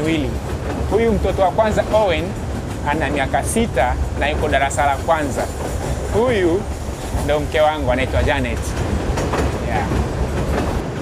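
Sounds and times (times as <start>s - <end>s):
train low rumble: 0.0s - 11.0s
wheels clicking over track: 0.0s - 11.0s.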